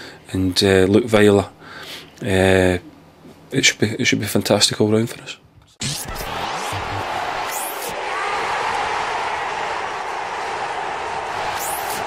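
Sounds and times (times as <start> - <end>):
steady roar of noise: 5.8 - 12.0.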